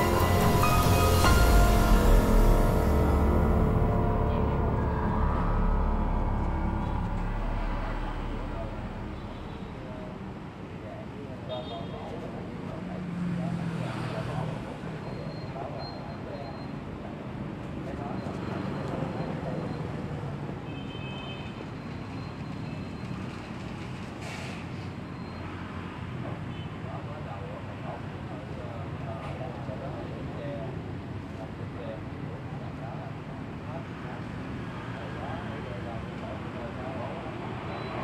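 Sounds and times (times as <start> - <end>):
indistinct voices: 0.0 - 12.3
passing vehicle engine rumble: 0.0 - 20.6
street traffic: 0.0 - 38.0.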